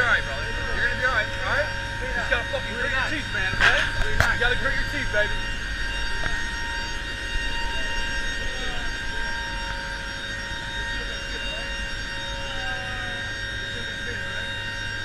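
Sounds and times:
turboprop engines droning in flight: 0.0 - 15.0.

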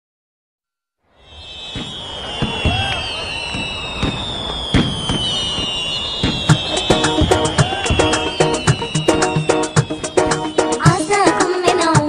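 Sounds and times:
firework whistles: 1.1 - 12.0
firework pops and cracks: 1.7 - 8.3.

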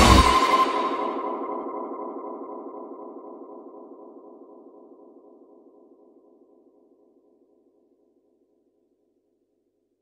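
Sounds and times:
pulsing synth note: 0.0 - 1.9.

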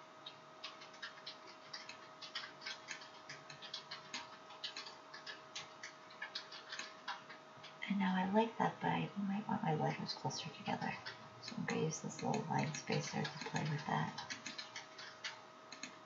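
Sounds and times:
faint steady hum: 0.0 - 16.0
computer mouse clicking: 0.2 - 7.8, 10.4 - 16.0.

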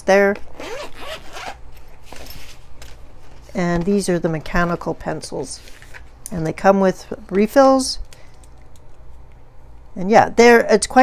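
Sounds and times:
zipper being pulled open: 0.4 - 1.6.

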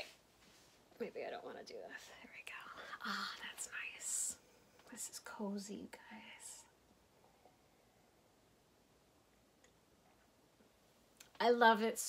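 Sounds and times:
woman speaking: 1.0 - 6.6, 11.3 - 12.0.

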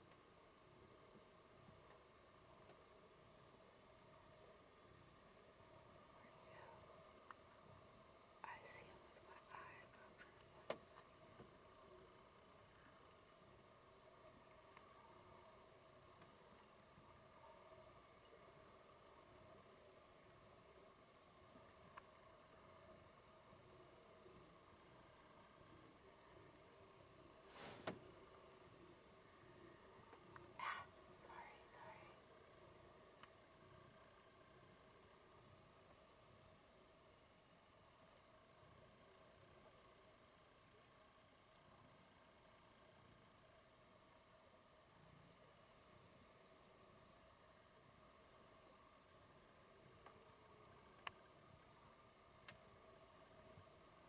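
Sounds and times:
faint whispering: 6.1 - 7.0, 8.4 - 10.7, 30.3 - 32.3.

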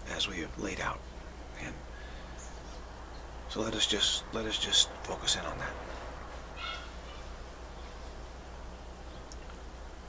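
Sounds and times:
faint outdoor background noise: 0.0 - 10.0
steady low hum: 0.0 - 10.0
short high bird call: 6.6 - 7.2.

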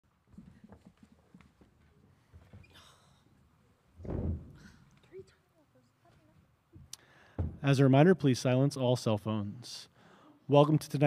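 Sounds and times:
faint knocks and shuffles: 0.1 - 7.7.

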